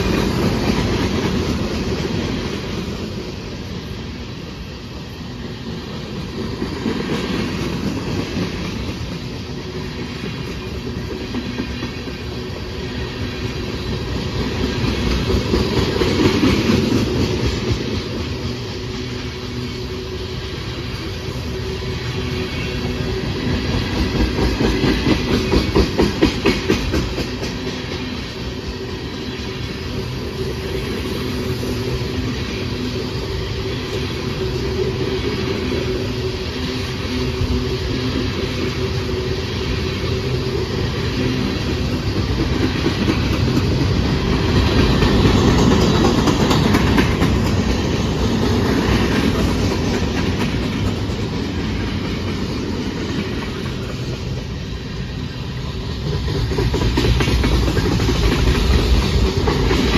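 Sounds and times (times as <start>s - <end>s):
train wheels rumbling on rails: 0.0s - 59.9s
wheels clacking over rail joints: 22.6s - 28.4s, 38.3s - 54.5s, 56.0s - 59.9s.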